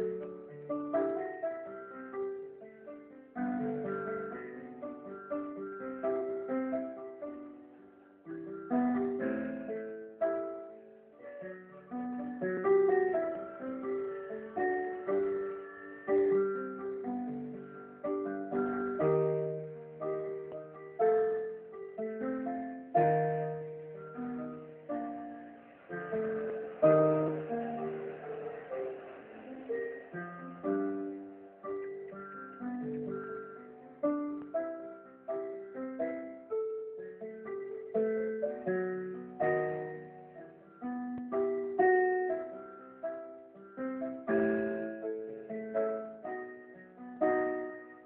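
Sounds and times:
electronic keyboard piano tune: 0.0 - 48.0.

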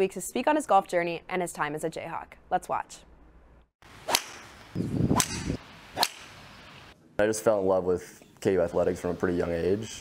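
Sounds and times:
golf clubs striking balls: 3.9 - 6.8.

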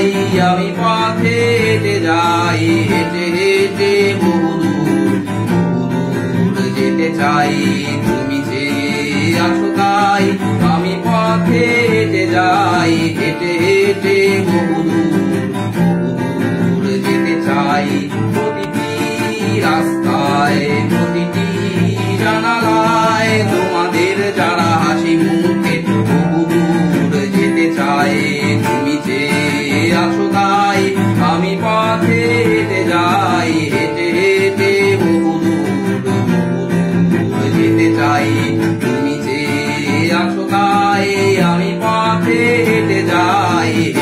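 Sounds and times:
acoustic guitar strumming chords: 0.0 - 44.0
man singing: 0.0 - 44.0.

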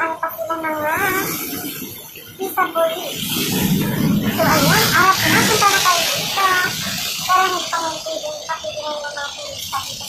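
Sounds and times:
person speaking: 0.0 - 1.6, 2.4 - 10.0
loud street noise: 0.0 - 10.0.

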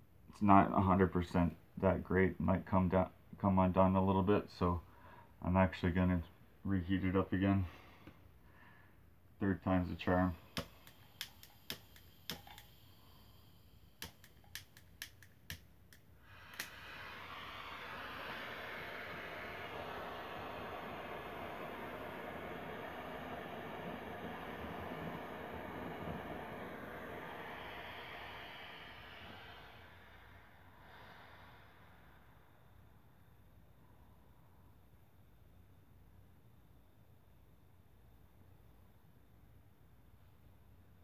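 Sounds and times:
torch flame hissing: 9.5 - 32.7
torch igniter clicking: 10.4 - 17.0.

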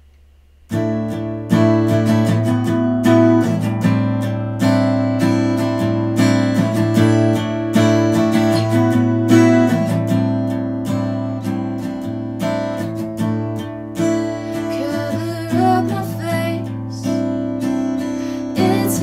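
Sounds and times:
acoustic guitar strumming: 0.6 - 19.0.

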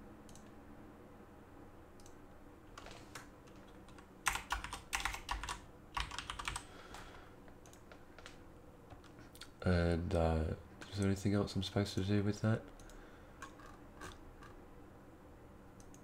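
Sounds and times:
typing on a computer keyboard: 3.2 - 7.0.

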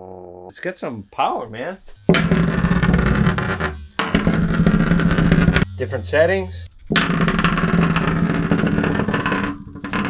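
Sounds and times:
vibrating motor buzzing: 0.7 - 10.0
toy rattling on hard tabletop: 6.8 - 10.0.

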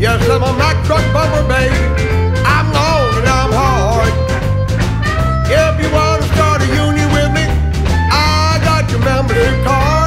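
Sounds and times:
blues band instrumental: 0.0 - 10.0.

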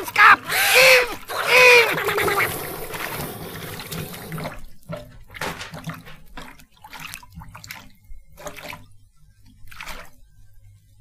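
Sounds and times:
water rushing: 0.0 - 4.7
small splashes and drips: 1.1 - 11.0.

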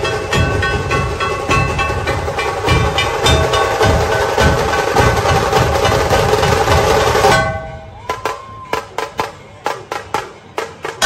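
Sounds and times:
sharp percussion hits: 0.0 - 11.0
street band music: 0.0 - 11.0.

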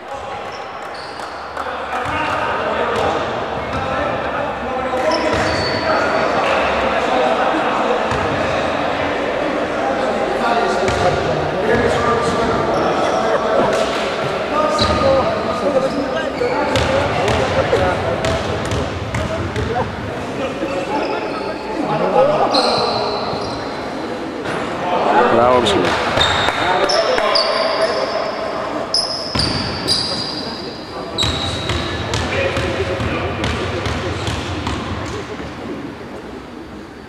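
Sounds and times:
players and spectators voices: 0.0 - 37.0.

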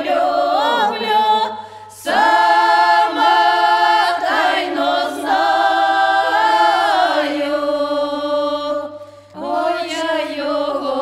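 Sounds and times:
women's choir singing a cappella: 0.0 - 11.0.

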